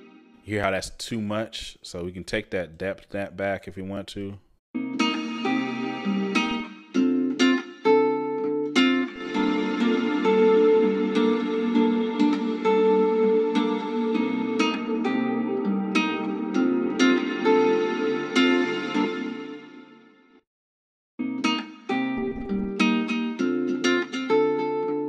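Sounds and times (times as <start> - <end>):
plucked guitar with reverb: 4.8 - 19.8, 21.2 - 25.0.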